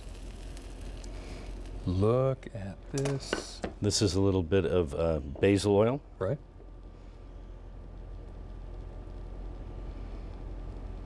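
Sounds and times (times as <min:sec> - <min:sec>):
low room hum: 0:00.0 - 0:11.0.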